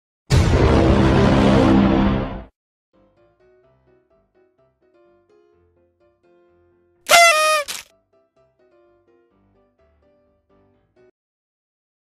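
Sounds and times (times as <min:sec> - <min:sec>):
horn-like blast dropping in pitch: 0:07.1 - 0:07.8
faint background melody: 0:07.9 - 0:11.1.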